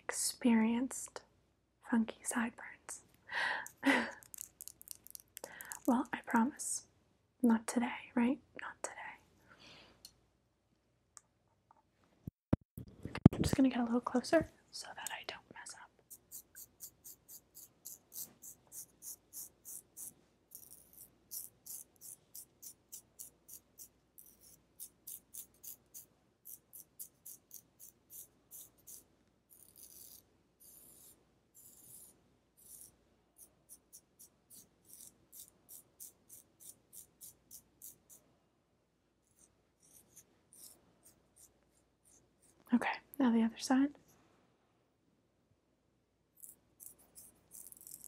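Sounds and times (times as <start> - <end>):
razor scraping strokes: 16.1 - 38.2, 39.2 - 42.6, 46.4 - 48.0.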